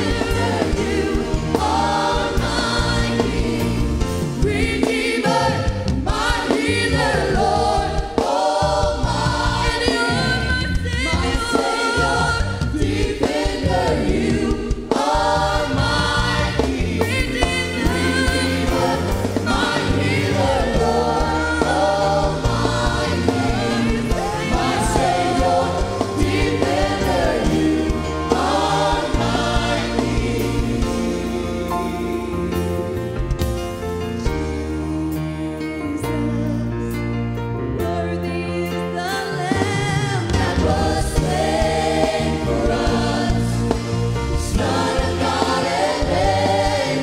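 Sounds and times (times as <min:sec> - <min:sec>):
drum kit: 0:00.0 - 0:37.0, 0:38.7 - 0:47.0
group singing gospel: 0:00.0 - 0:37.0, 0:37.7 - 0:47.0
bass guitar: 0:00.0 - 0:47.0.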